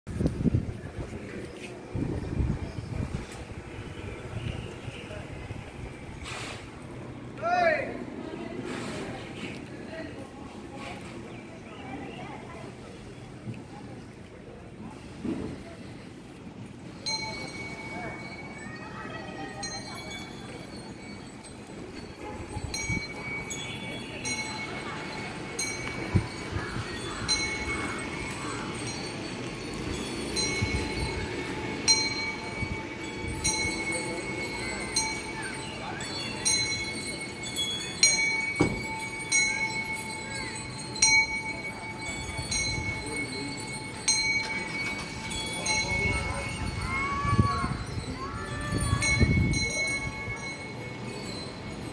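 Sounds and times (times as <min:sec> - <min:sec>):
metal bell clanging: 0:16.8 - 0:51.9.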